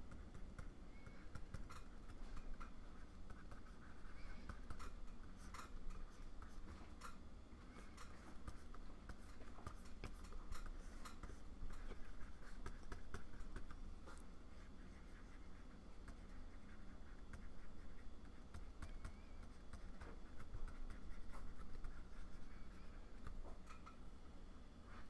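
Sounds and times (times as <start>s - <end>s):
stylus scratching and tapping on glass: 0.0s - 24.0s
low steady hum: 0.0s - 25.0s.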